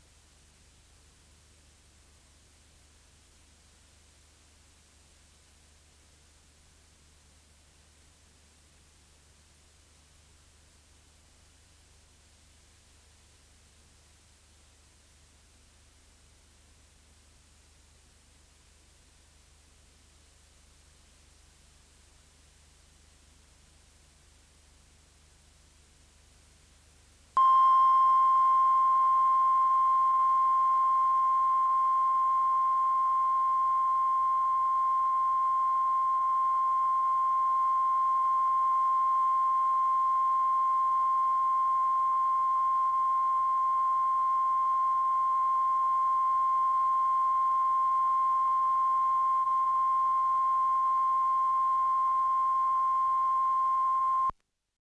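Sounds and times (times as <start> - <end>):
steady high pure tone: 27.4 - 54.4.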